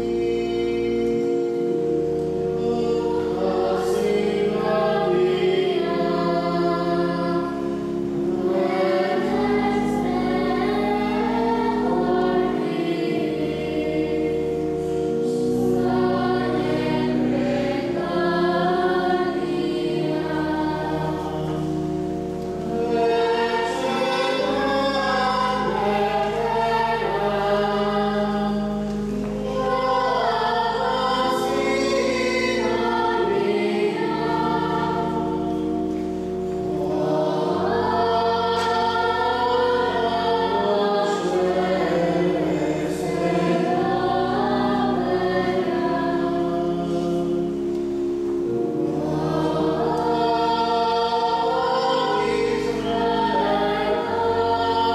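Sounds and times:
choir singing: 0.0 - 54.9.

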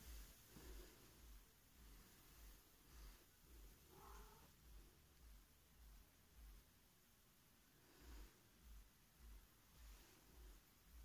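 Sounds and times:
faint cat meow: 3.9 - 4.5.

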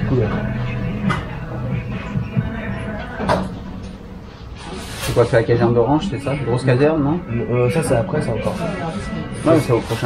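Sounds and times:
room ambience hum: 0.0 - 10.0.

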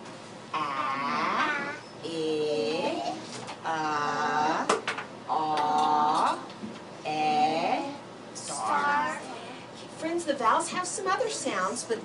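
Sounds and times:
woman saying drawn-out vowels: 0.5 - 4.7, 7.0 - 9.4.

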